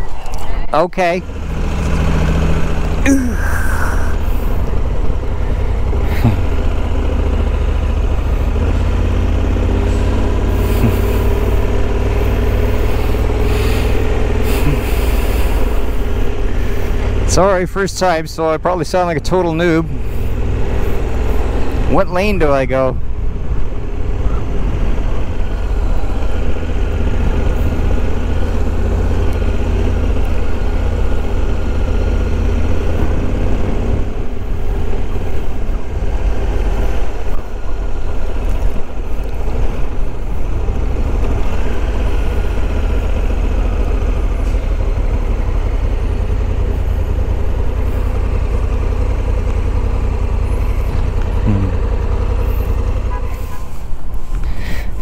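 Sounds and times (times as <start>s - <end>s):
motorcycle engine rumbling: 0.0s - 55.0s.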